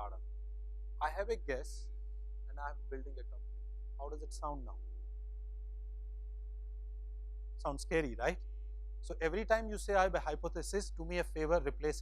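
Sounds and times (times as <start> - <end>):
faint higher steady tones: 0.0 - 12.0
low electrical hum: 0.0 - 12.0.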